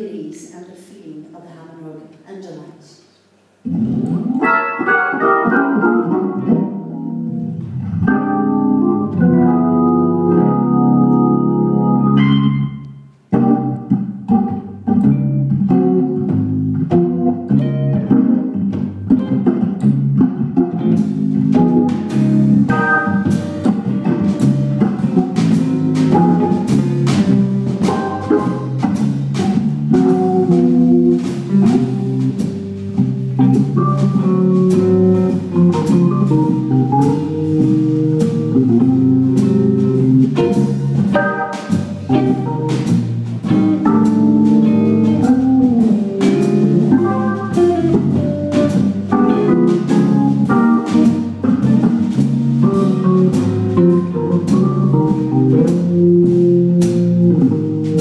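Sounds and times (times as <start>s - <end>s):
organ playing jazz: 3.7s - 58.0s
drum kit cymbals: 20.9s - 58.0s.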